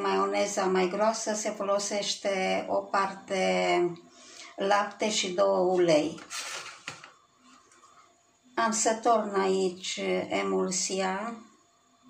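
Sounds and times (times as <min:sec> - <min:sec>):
plastic container scraping metal tray: 0:06.1 - 0:07.1.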